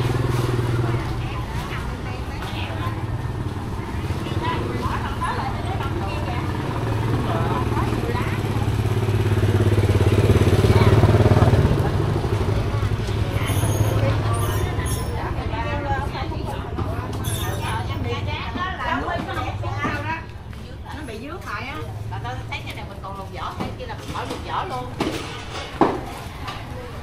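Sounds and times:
motor scooter engine hum: 0.0 - 18.2
people chattering: 0.0 - 27.0.

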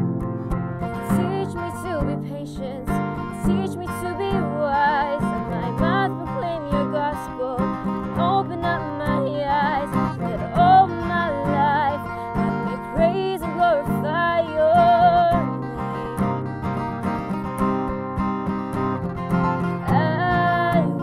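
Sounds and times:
strummed acoustic guitar: 0.0 - 21.0
woman singing with vibrato: 0.9 - 16.4, 19.8 - 21.0.

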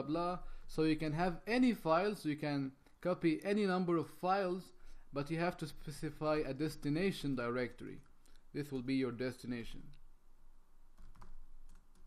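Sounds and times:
computer keyboard typing: 11.0 - 12.0.

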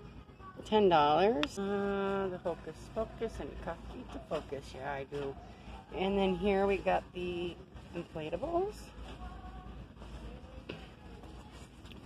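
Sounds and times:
faint christmas music from speakers: 0.0 - 12.0.

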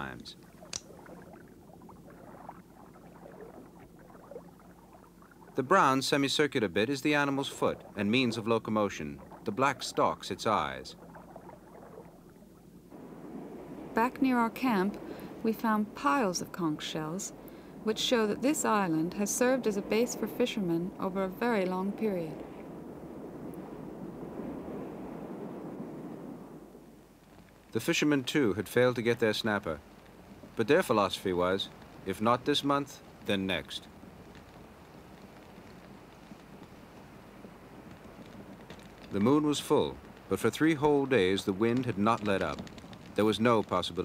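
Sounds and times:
water lapping: 0.0 - 26.4, 27.7 - 44.0
low steady hum: 0.0 - 44.0
sea rushing: 0.0 - 44.0
wind: 0.0 - 44.0
small ticks and knocks: 0.3 - 1.4, 27.2 - 27.8, 33.0 - 44.0.

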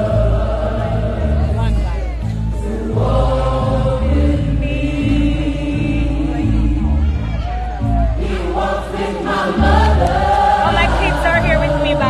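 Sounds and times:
music with deep bass line: 0.0 - 8.8, 9.6 - 12.0
gospel choir singing: 0.0 - 12.0.

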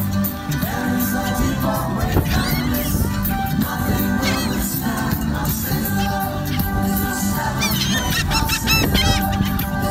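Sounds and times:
background music: 0.0 - 9.9
gulls calling: 0.8 - 9.9.

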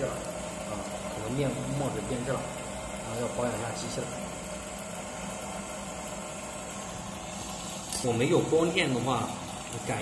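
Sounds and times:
inkjet printer humming: 0.0 - 10.0.

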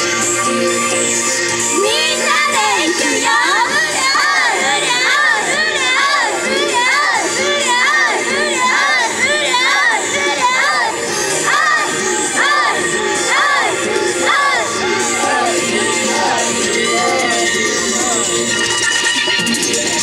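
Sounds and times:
young women shouting and cheering: 1.7 - 18.5.

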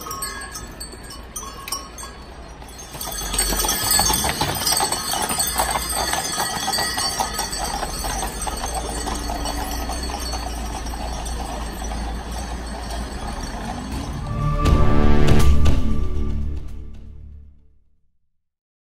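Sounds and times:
horse hooves clip-clopping on asphalt: 0.0 - 14.4
harness bells jingling: 0.0 - 14.9.

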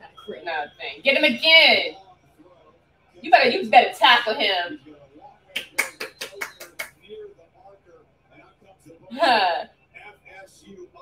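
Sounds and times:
person clapping hands: 5.5 - 7.0.

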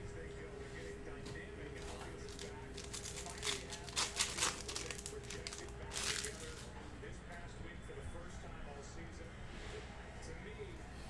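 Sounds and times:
cellophane wrapper crinkling and tearing: 2.3 - 6.7.

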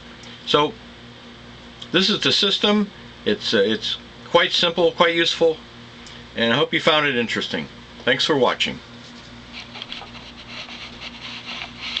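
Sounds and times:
steady low hum: 0.0 - 12.0
rubbing and rustling handling noise: 8.9 - 12.0.

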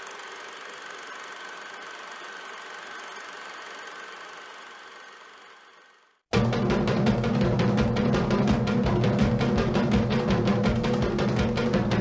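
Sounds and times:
film projector running: 0.0 - 6.2.

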